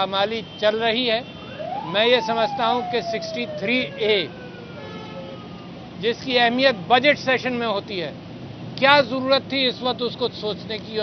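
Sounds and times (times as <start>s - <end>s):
siren wailing: 1.4s - 5.8s.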